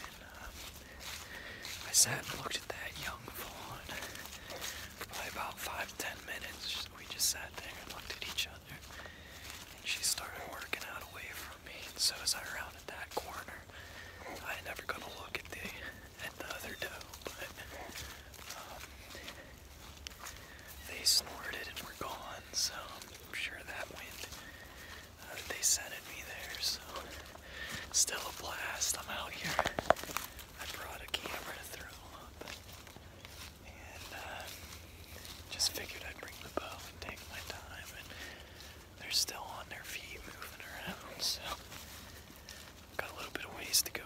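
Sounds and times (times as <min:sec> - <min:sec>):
man whispering: 0:00.0 - 0:44.0.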